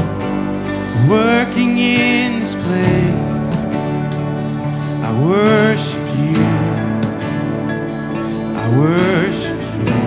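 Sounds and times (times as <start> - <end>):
man singing: 0.0 - 3.7, 5.0 - 7.2, 8.4 - 10.0
acoustic guitar: 0.0 - 10.0.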